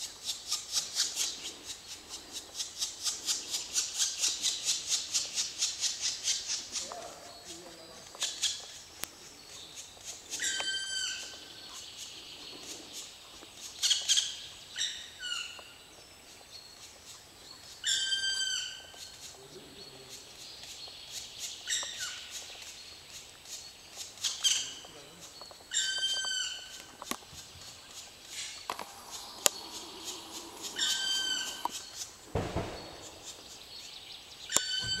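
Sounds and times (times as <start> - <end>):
woodpecker nestling calling: 0.0 - 35.0
bird drawn-out calls: 28.2 - 33.7, 34.5 - 35.0
high chirps: 28.4 - 35.0.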